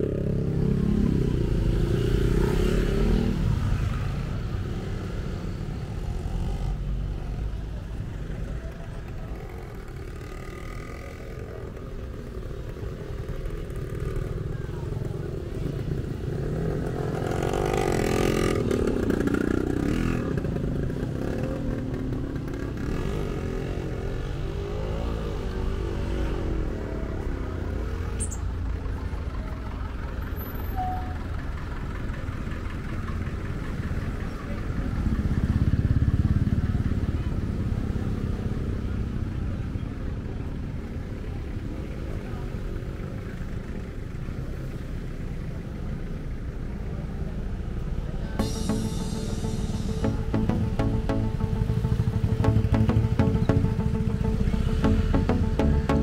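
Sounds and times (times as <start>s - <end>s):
slow road traffic passing: 0.0s - 56.0s
vehicle engines rumbling: 0.0s - 56.0s
vehicle passing loudly: 48.4s - 56.0s.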